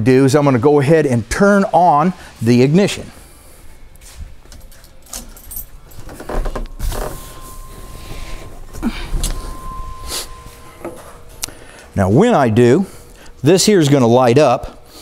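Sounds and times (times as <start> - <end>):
keys jangling: 4.4 - 7.2
faint high tone: 7.0 - 13.0.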